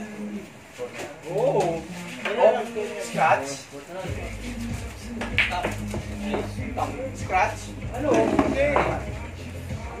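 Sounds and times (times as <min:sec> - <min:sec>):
song with singing voice: 0:03.9 - 0:10.0.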